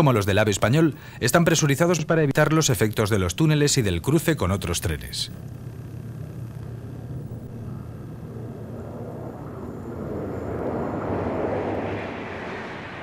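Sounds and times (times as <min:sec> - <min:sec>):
high-speed train passing: 0:07.6 - 0:13.0.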